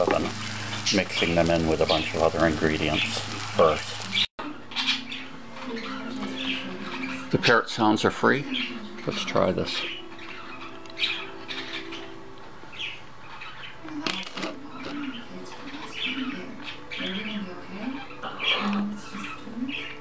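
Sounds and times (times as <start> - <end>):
parrot chirping and squawking: 0.2 - 7.6, 8.3 - 13.8, 14.6 - 20.0.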